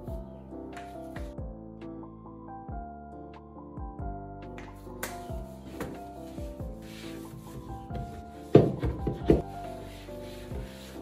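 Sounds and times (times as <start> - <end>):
soft background music: 0.0 - 11.0
wiping and rubbing on wood: 5.5 - 11.0
loud knocks on wood: 8.5 - 9.4.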